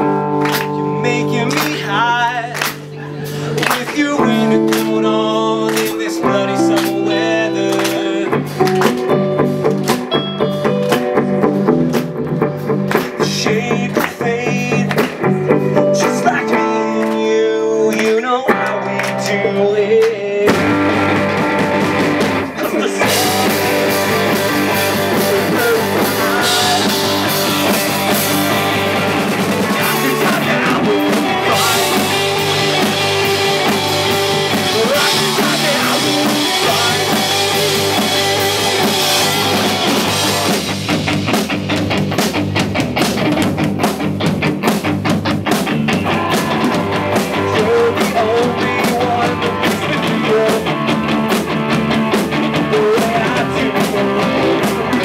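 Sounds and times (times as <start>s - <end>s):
distorted electric guitars: 0.0s - 55.0s
drum kit: 0.0s - 55.0s
electric bass: 0.0s - 55.0s.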